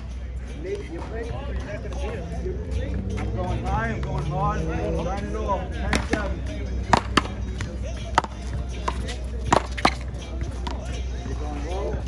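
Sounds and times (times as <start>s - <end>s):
paddles smacking rubber ball: 5.9s - 10.9s.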